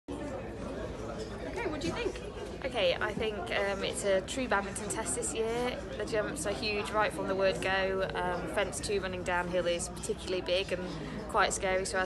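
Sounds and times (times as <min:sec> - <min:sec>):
murmur of people talking: 0:00.1 - 0:12.0.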